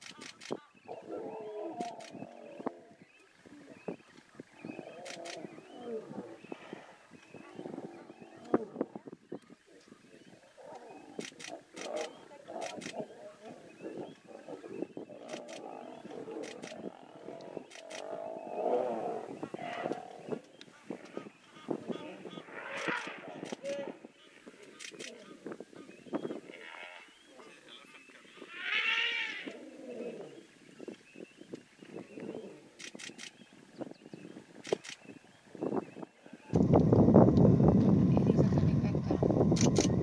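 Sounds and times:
sharp clicks: 0:00.0 - 0:00.6, 0:05.0 - 0:05.4, 0:11.2 - 0:13.0, 0:15.3 - 0:15.6, 0:16.4 - 0:16.8, 0:17.7 - 0:18.1, 0:32.8 - 0:33.4, 0:39.6 - 0:40.0
lions growling and snarling: 0:00.9 - 0:03.0, 0:04.6 - 0:08.9, 0:10.2 - 0:20.4, 0:28.8 - 0:30.5.

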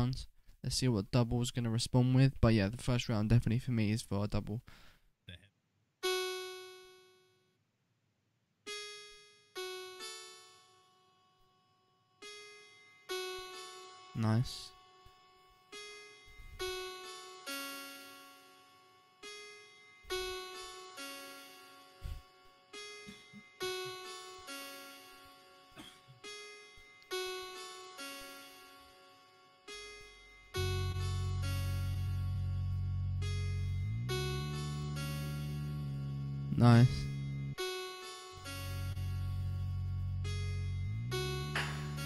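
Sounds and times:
looped beatbox music: 0:41.5 - 0:42.0.

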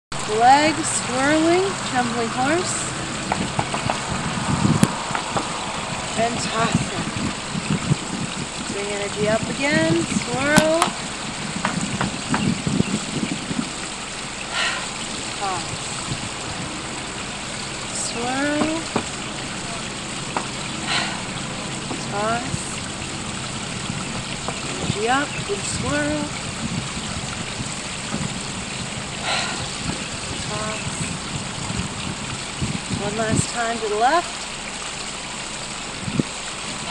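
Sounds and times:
wind rushing hiss: 0:00.2 - 0:33.1
wind buffeting microphone: 0:00.2 - 0:36.9.

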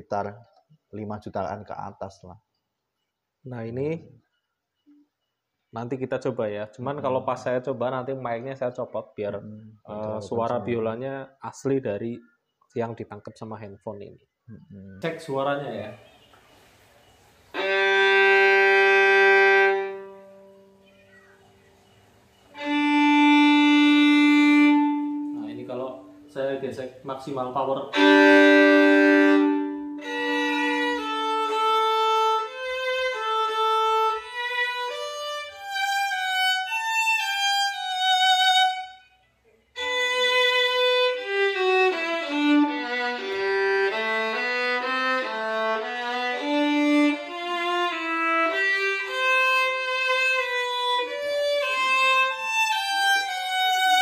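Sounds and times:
violin bowed hard: 0:17.5 - 0:20.7, 0:22.5 - 0:39.0, 0:39.8 - 0:54.0.

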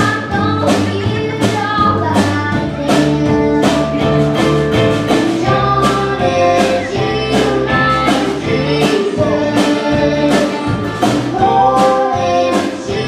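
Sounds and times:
woman singing: 0:00.0 - 0:04.4, 0:05.2 - 0:13.0
drum beat: 0:00.0 - 0:13.0
electric guitar: 0:00.0 - 0:13.0
upright bass: 0:00.0 - 0:13.0.

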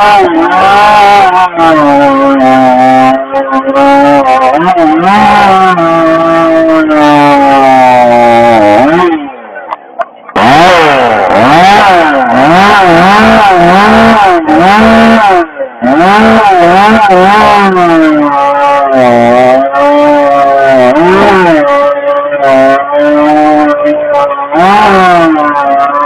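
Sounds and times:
chainsaw revving: 0:00.0 - 0:09.4, 0:10.3 - 0:26.0.

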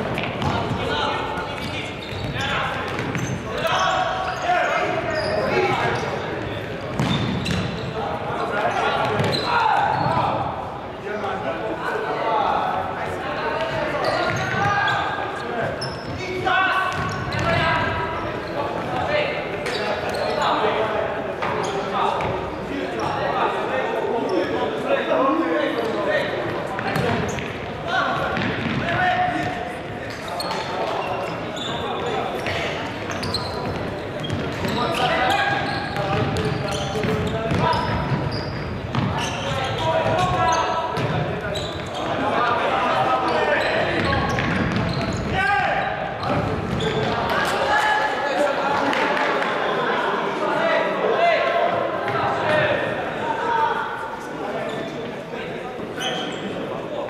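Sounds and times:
players calling out: 0:00.1 - 0:56.8.

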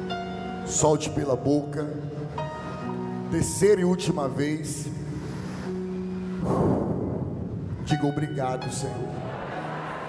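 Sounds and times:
breath blown into microphone: 0:06.4 - 0:07.8.

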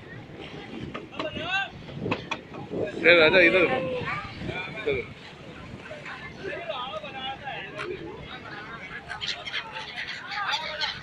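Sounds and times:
boat engine: 0:00.0 - 0:11.0
wind: 0:00.0 - 0:11.0.

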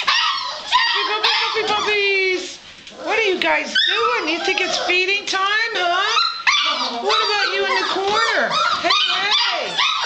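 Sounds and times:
puppies whining and yipping: 0:00.0 - 0:02.1, 0:03.1 - 0:10.0.

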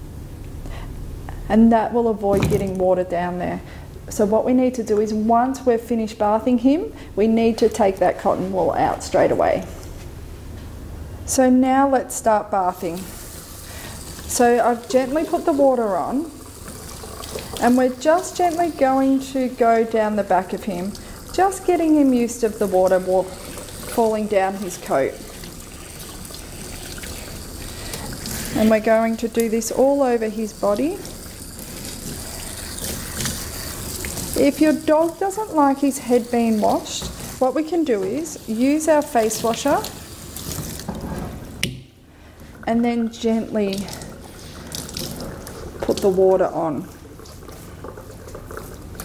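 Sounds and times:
shower sprayer water pouring: 0:12.8 - 0:41.0, 0:43.5 - 0:49.0.

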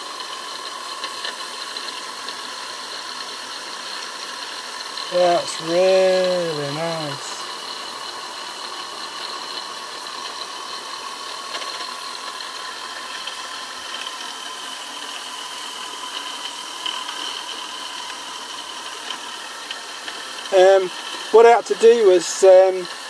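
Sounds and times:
steam turbine hissing and whining: 0:00.0 - 0:23.0.

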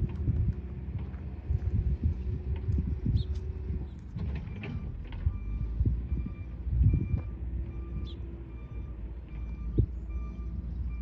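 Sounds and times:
gusting wind buffeting: 0:00.0 - 0:11.0.

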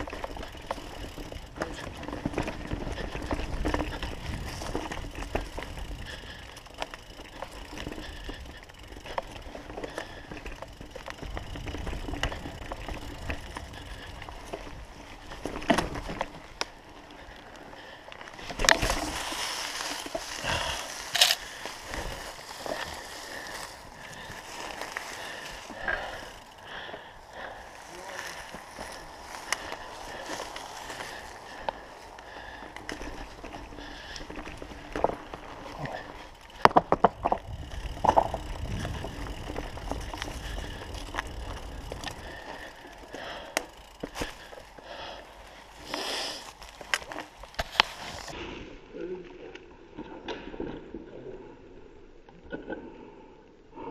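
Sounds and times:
bike tyre rolling on dirt: 0:00.0 - 0:50.6.

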